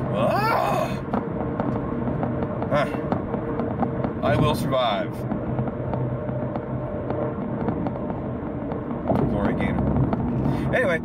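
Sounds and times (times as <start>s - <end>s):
car cabin road noise: 0.0s - 11.0s.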